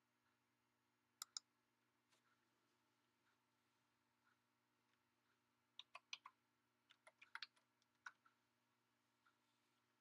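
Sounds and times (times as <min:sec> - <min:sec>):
keyboard typing: 0:05.7 - 0:08.4.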